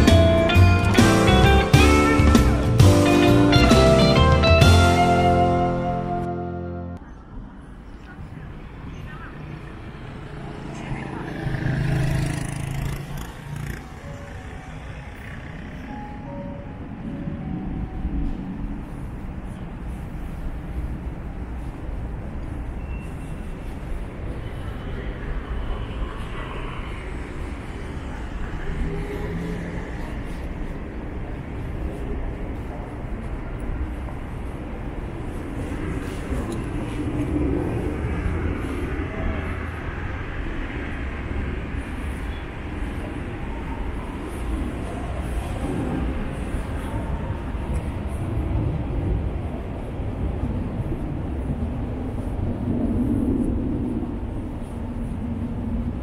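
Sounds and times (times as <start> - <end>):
distant traffic hum: 0.0 - 56.0
faint voices: 7.0 - 15.8.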